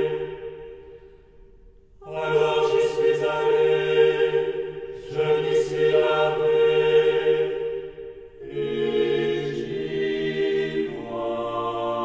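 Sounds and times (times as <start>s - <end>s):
choir singing a chant: 0.0s - 1.1s, 2.0s - 12.0s.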